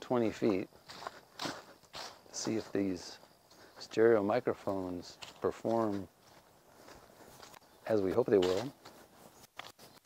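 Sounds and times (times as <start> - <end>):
footsteps on leafy dirt: 0.0 - 10.0.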